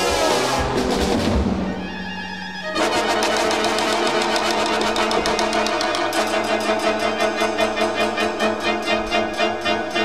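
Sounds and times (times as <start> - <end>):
rock band with orchestra: 0.0 - 10.0.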